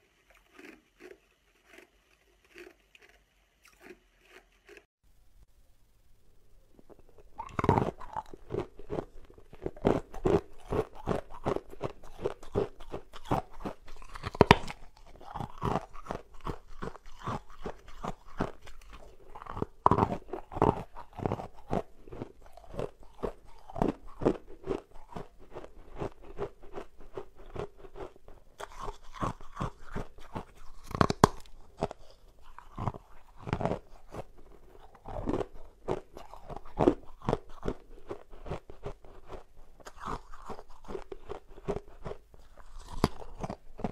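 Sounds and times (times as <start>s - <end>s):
ice balls crunching when chewed: 0.0s - 4.9s, 6.8s - 43.9s.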